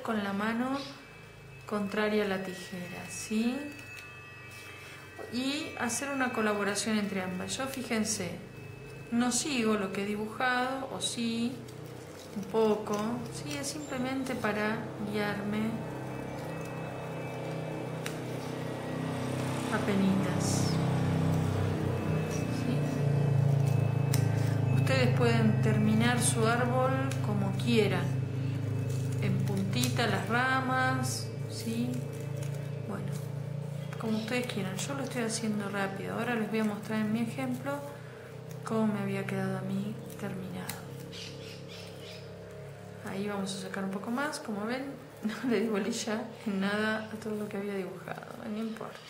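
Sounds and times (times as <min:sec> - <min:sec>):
steady low hum: 0:00.0 - 0:48.6
scissors snipping paper: 0:11.2 - 0:14.3, 0:28.8 - 0:35.4, 0:39.8 - 0:42.2.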